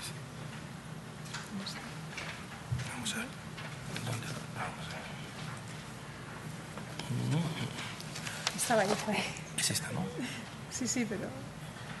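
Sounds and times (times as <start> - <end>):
steady low hum: 0.0 - 12.0
handling noises at a table: 0.5 - 5.9, 7.7 - 9.5.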